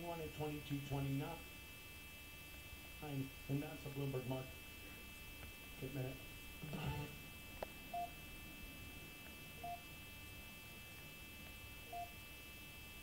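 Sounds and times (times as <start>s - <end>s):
faint electronic beeps: 7.9s - 8.2s, 9.6s - 9.8s, 11.9s - 12.2s.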